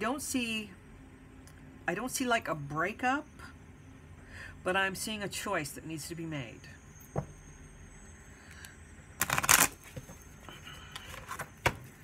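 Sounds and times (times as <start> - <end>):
cards being shuffled: 9.2 - 10.1.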